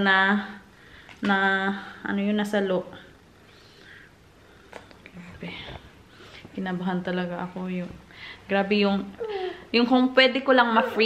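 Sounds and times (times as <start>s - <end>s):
woman murmuring: 9.0s - 9.8s.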